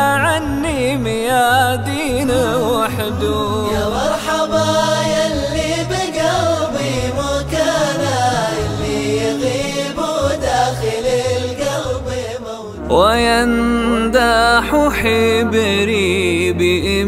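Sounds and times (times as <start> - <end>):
man singing: 0.0 - 10.0, 12.7 - 17.0.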